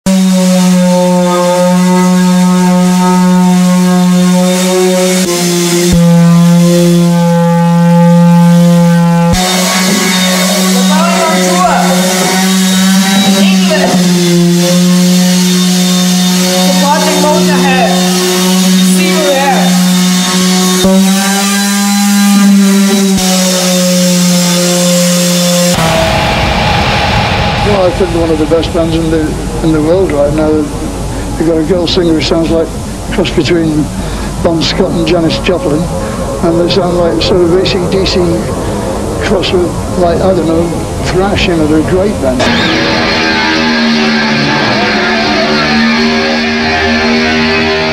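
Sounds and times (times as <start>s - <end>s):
power tool motor humming: 0.1s - 27.5s, 42.4s - 47.9s
people talking: 9.4s - 14.8s, 16.5s - 19.9s, 20.8s - 21.2s, 27.6s - 38.6s, 39.2s - 42.5s.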